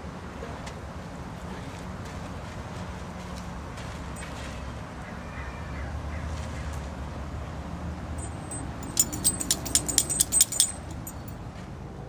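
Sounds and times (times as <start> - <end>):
dog collar tag jingling: 8.2 - 11.3.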